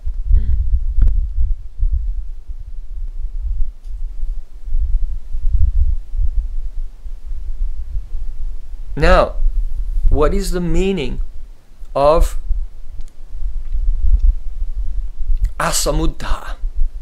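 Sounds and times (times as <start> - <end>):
deep uneven rumble: 0.0 - 15.5.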